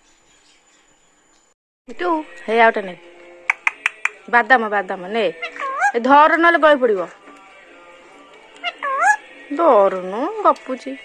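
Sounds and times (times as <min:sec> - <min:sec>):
parakeet calls: 0:03.5 - 0:04.3, 0:05.3 - 0:07.2, 0:08.4 - 0:10.8.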